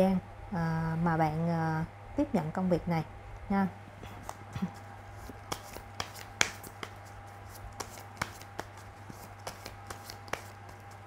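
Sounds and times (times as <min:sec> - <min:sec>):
cards shuffling clicks: 0:05.2 - 0:11.0.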